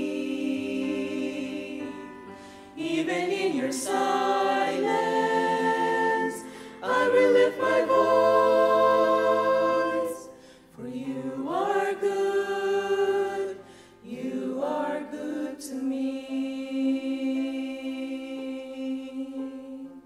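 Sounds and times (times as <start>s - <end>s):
choir singing held chords: 0.0s - 20.0s.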